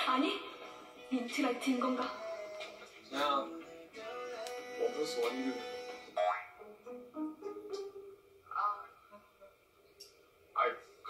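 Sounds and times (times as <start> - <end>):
light comedic music: 0.0 - 9.3
rising boing sound effect: 6.2 - 6.6.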